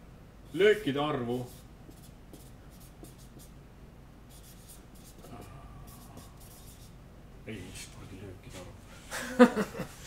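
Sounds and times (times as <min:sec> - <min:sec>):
marker writing on whiteboard: 0:00.6 - 0:03.6, 0:04.3 - 0:07.0.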